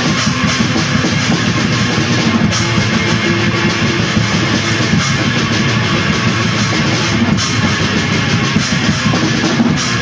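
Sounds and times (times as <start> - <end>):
black metal music: 0.0 - 10.0.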